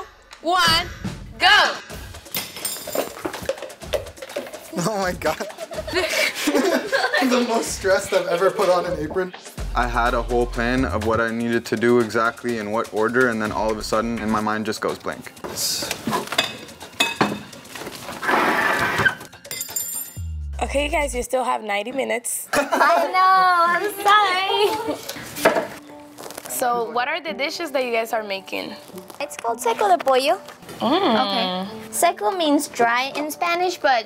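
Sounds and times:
cookware and utensils clattering: 2.2s - 8.9s, 15.2s - 20.2s.

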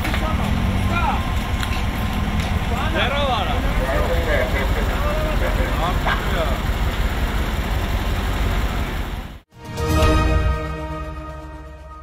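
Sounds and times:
truck engine rumbling: 0.0s - 11.9s
men calling out: 2.6s - 6.7s.

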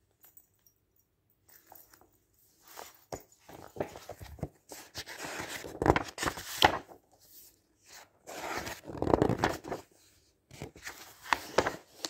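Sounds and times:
magazine pages turning: 2.6s - 12.0s.

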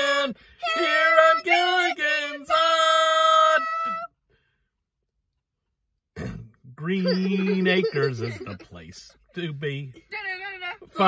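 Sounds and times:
voices singing a held note: 0.0s - 4.1s.

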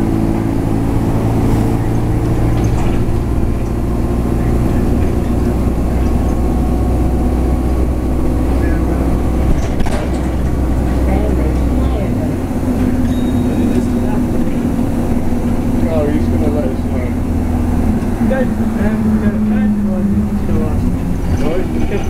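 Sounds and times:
bus engine drone: 0.0s - 22.0s
road noise: 0.0s - 22.0s.

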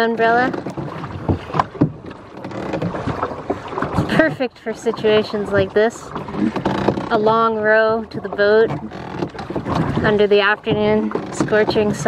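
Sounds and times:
oars knocking in oarlocks: 0.0s - 12.0s.

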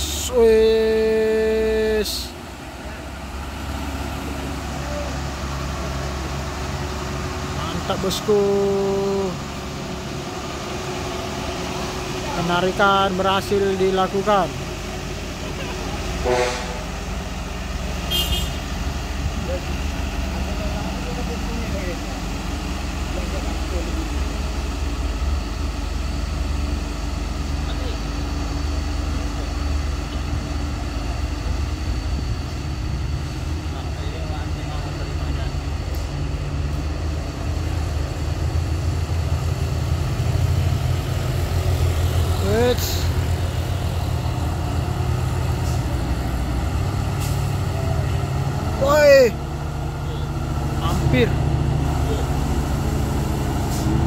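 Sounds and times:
diesel truck engine rumble: 0.0s - 54.0s.

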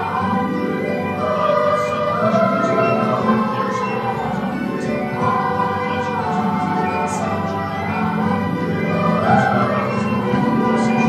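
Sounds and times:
choir singing: 0.0s - 11.0s
orchestral accompaniment: 0.0s - 11.0s.

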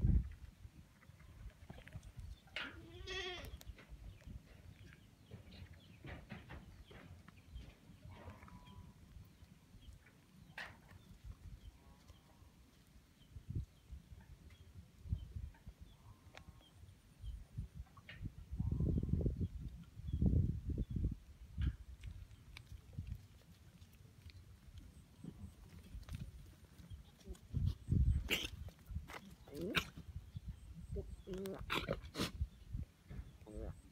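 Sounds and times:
goat bleating: 2.6s - 3.6s.

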